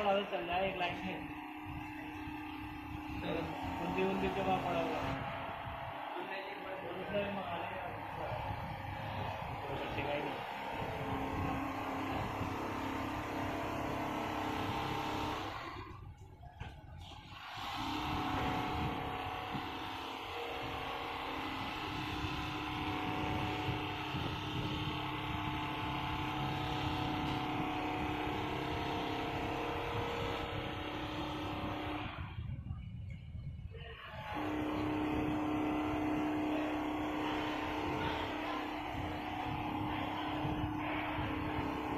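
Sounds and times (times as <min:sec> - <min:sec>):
quilting machine humming: 0:00.0 - 0:33.0, 0:34.0 - 0:41.9.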